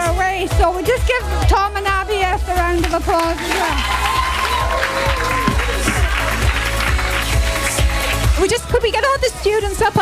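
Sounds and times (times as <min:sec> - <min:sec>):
background music with bass: 0:00.0 - 0:10.0
audience applauding: 0:02.8 - 0:08.4.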